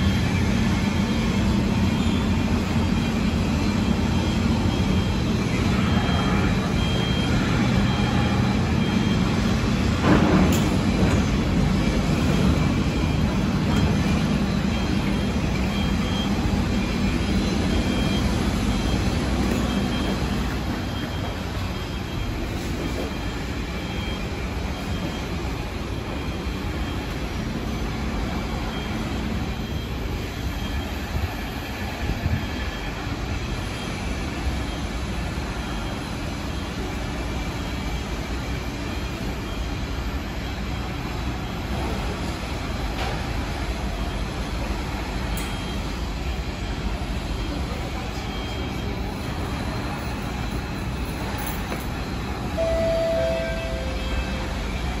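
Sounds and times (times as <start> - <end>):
station ambience: 0.0 - 55.0
train air-conditioning hum: 0.0 - 55.0.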